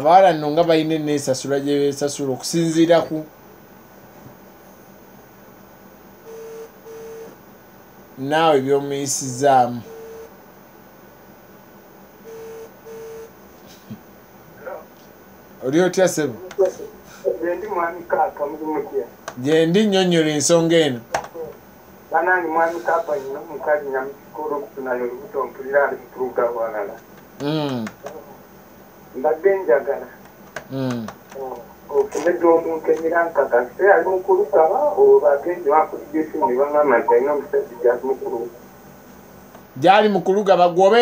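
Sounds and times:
telephone ringback beeps: 6.3 - 7.3, 9.9 - 10.3, 12.3 - 13.3
person talking: 15.6 - 28.4, 29.2 - 38.6.

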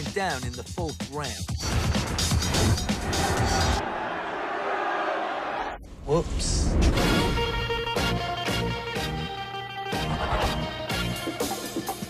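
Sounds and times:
trailer music with heavy beat: 0.0 - 3.8, 6.9 - 12.0.

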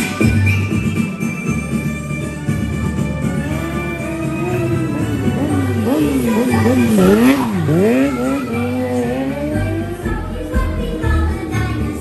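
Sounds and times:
motorcycle engine revving past: 3.5 - 10.1.

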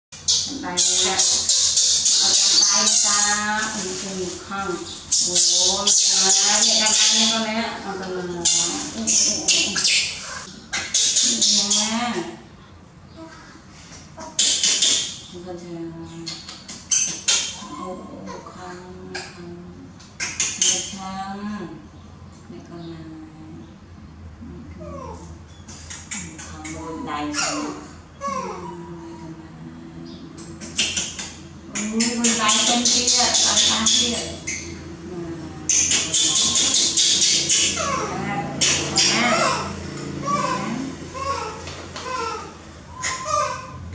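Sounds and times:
baby monkey screaming: 0.2 - 7.5, 8.4 - 12.1, 14.2 - 15.2, 24.8 - 29.2, 35.7 - 43.9.

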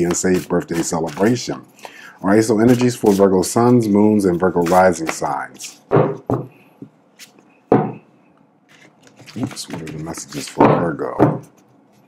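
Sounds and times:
cards rustling: 0.0 - 5.8, 8.7 - 11.0
knock: 5.9 - 6.5, 7.7 - 8.0.

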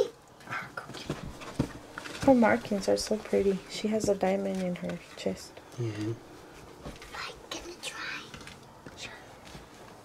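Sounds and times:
soft thumps and rustles: 0.9 - 2.6.

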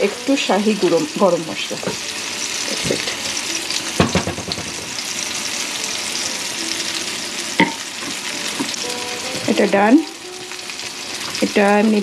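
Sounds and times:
curry sizzling in a skillet: 0.0 - 12.0
sharp knocks: 4.0 - 4.9.

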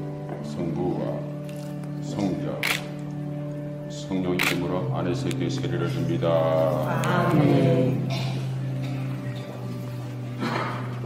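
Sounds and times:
choir singing: 6.8 - 8.2.

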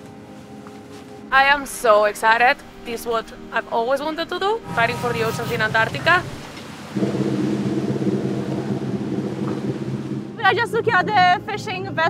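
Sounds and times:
water noise: 2.6 - 10.9
boat engine running: 3.6 - 12.0
rush of wind: 4.6 - 10.4.

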